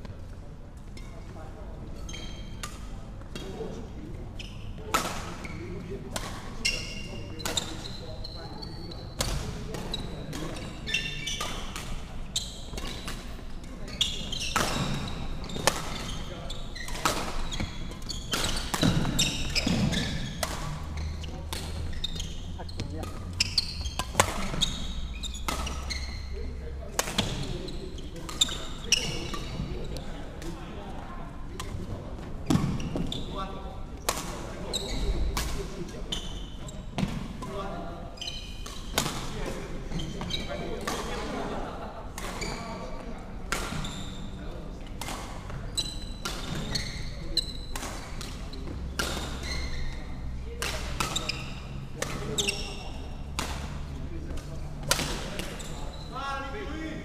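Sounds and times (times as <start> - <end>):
shoes squeaking on wooden floor: 13.8 - 26.6, 27.2 - 30.1, 34.6 - 35.2, 38.2 - 38.6, 39.9 - 40.6, 42.4 - 43.1, 43.7 - 44.4, 45.4 - 50.4, 51.0 - 53.4, 55.5 - 56.2
racket striking shuttlecock: 25.4 - 25.9, 47.7 - 48.4.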